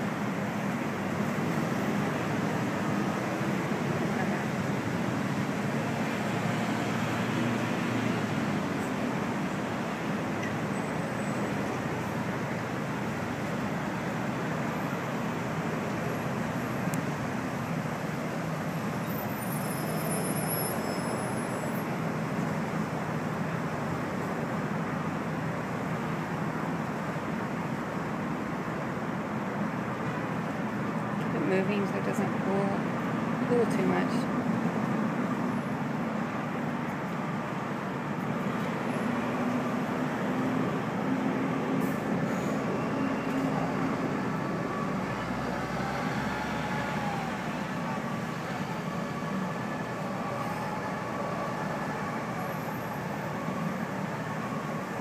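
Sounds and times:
city background noise: 0:00.0 - 0:55.0
traffic rumble: 0:00.0 - 0:55.0.

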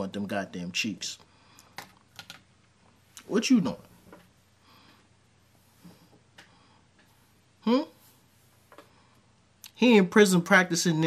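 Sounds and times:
soft keyboard clicks: 0:01.6 - 0:02.4.

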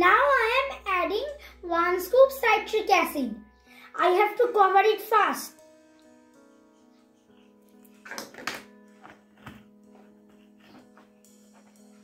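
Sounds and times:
quiet background music: 0:00.0 - 0:12.0
light knocks and taps: 0:08.1 - 0:11.1.

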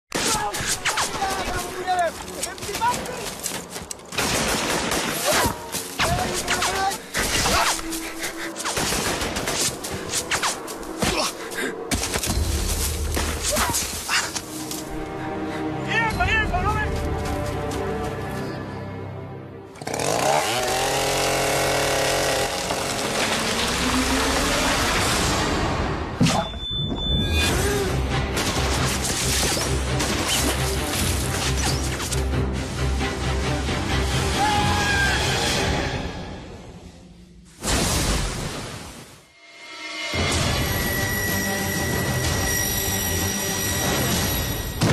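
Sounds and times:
dramatic music score: 0:00.1 - 0:44.9
rapid gunshots: 0:04.1 - 0:07.8, 0:08.6 - 0:10.5.

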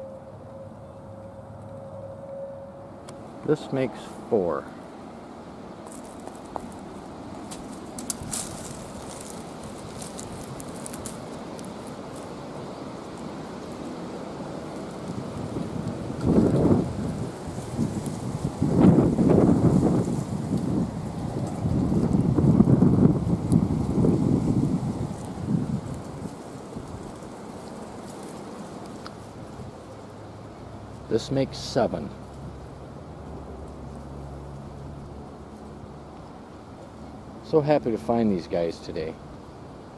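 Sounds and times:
faint outdoor hiss: 0:00.0 - 0:39.9
wind rumbling on microphone: 0:05.6 - 0:31.1.

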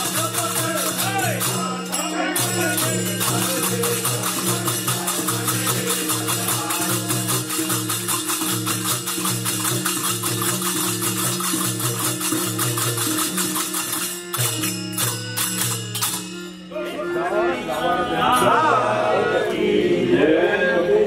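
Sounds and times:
harmonium chords: 0:00.0 - 0:09.3, 0:10.1 - 0:21.0
jingling percussion: 0:00.0 - 0:17.3.

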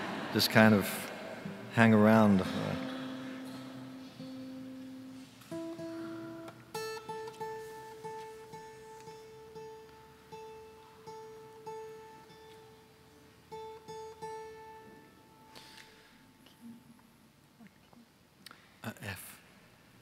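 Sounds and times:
acoustic guitar picking: 0:00.0 - 0:17.2.

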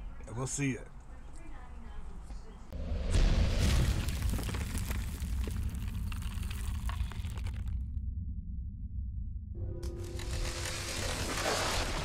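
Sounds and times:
deep low rumble: 0:02.7 - 0:11.4
crackling stone debris: 0:03.2 - 0:08.0, 0:10.0 - 0:12.0.

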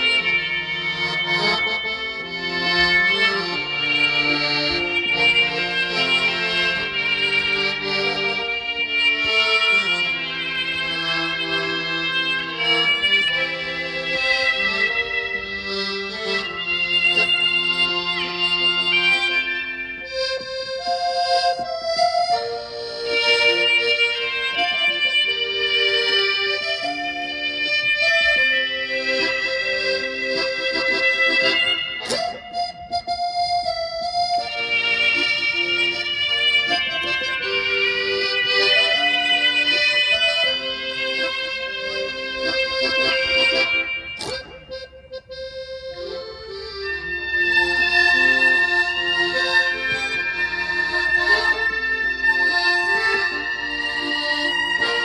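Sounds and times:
electric violin melody: 0:00.0 - 0:55.0
piano accordion melody: 0:00.0 - 0:55.0.

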